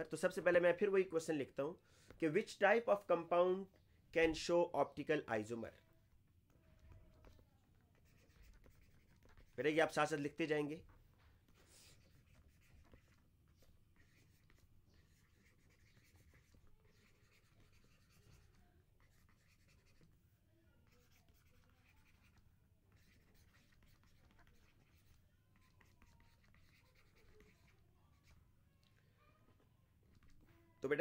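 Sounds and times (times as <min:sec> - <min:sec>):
stylus scratching on a tablet: 0:06.5 - 0:28.6, 0:30.0 - 0:30.8.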